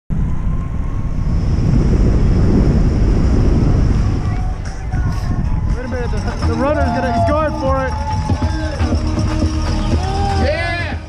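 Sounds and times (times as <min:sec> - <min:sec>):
wind buffeting microphone: 0:00.1 - 0:09.4.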